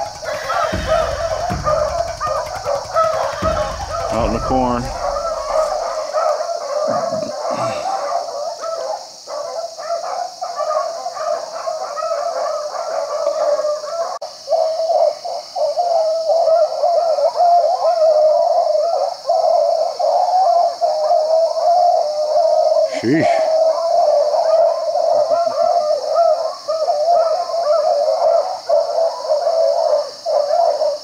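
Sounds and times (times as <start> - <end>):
beagles baying: 0.0 - 6.4.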